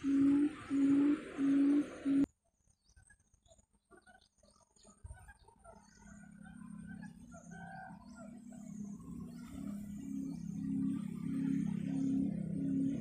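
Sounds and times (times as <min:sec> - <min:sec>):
quail call through loudspeaker: 0:05.0 - 0:09.8.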